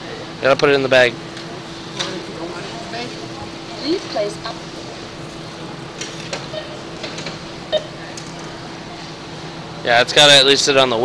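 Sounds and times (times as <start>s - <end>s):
store hum: 0.0s - 11.0s.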